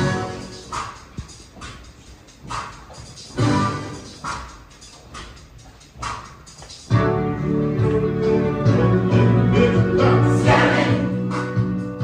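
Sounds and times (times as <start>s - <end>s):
choir high vocal bursts: 9.5s - 11.2s.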